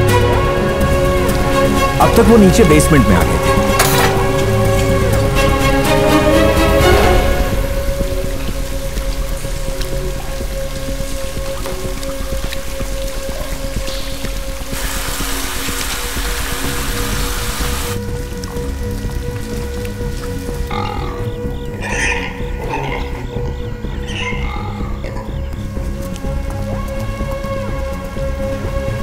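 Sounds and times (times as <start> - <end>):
running and dripping water: 0.0 - 29.0
suspense film score: 0.0 - 29.0.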